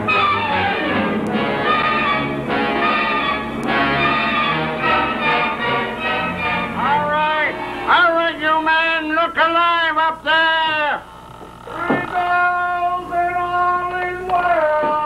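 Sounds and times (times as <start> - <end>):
orchestral music with brass: 0.0 - 7.9.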